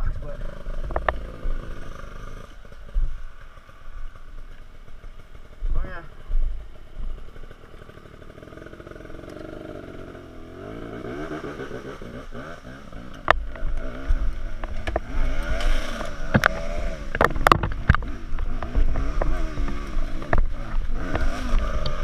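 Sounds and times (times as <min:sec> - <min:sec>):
dirt bike engine running: 0:00.0 - 0:22.0.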